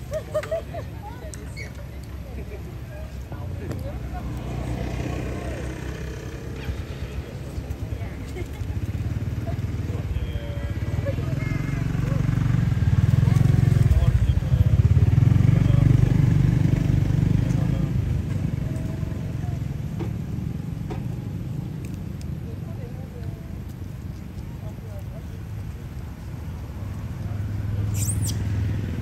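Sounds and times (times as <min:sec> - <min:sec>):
vehicle engine passing: 0:03.9 - 0:08.0, 0:26.7 - 0:29.0.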